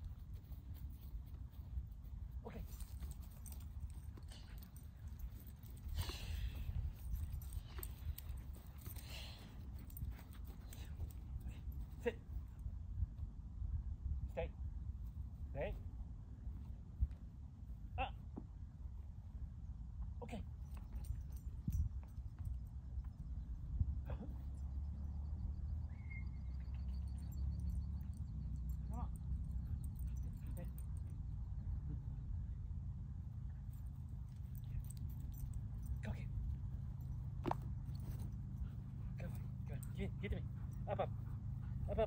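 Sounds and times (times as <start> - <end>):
wind rumble on microphone: 12.4 - 17.6, 20.8 - 26.1
man calling out: 18.0 - 18.2.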